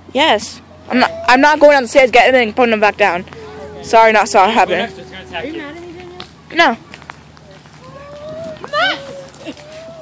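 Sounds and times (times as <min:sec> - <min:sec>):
person laughing: 0:09.2 - 0:09.9.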